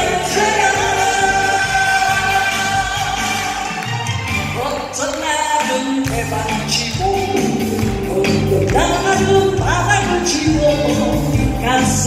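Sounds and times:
music with steady bass beat: 0.0s - 12.0s
person singing into microphone: 0.0s - 12.0s.

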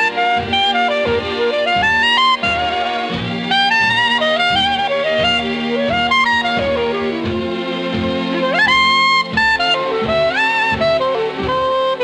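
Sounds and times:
horn melody with sliding notes: 0.0s - 12.0s
instrumental jazz: 0.0s - 12.0s.

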